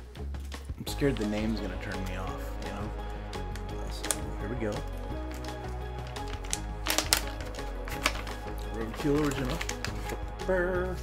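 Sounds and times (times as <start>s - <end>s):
background music: 0.0s - 11.0s
plastic bag crinkling: 3.9s - 10.3s.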